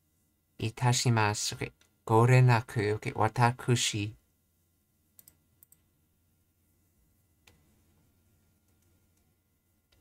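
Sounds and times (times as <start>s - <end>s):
computer mouse clicks: 5.1s - 5.9s.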